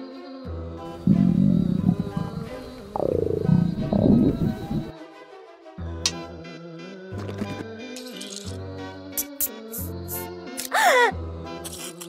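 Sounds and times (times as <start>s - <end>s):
background music: 0.0s - 12.0s
cartoon stomach growl: 1.0s - 4.9s.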